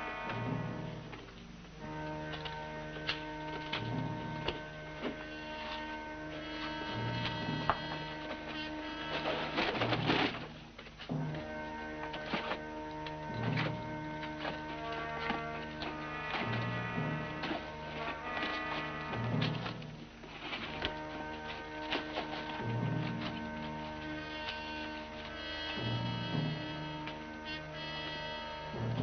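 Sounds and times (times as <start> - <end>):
held orchestral notes: 0.0 - 29.0
low pulsing note: 0.0 - 29.0.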